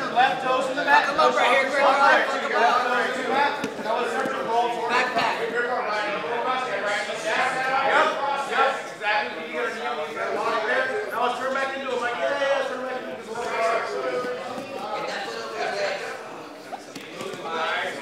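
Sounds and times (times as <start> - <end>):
voices talking and calling out: 0.0 - 18.0.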